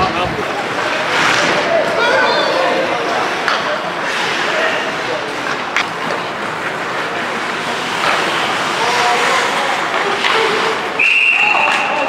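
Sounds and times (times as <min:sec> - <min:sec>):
faint shouted voices: 0:00.2 - 0:05.3
skate blades scraping ice: 0:00.5 - 0:02.2, 0:02.9 - 0:12.0.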